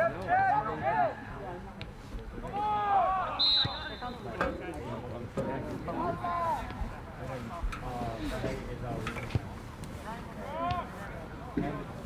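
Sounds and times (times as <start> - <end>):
players shouting calls: 0.0 - 1.4, 2.4 - 7.2
short high whistle blast: 3.4 - 4.2.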